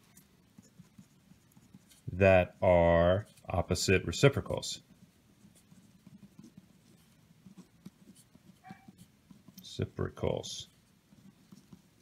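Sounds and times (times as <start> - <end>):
pen scratching on paper: 0.0 - 12.0.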